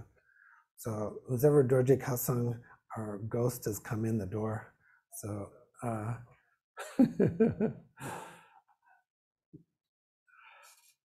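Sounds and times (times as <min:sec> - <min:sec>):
man laughing: 0:06.8 - 0:08.3.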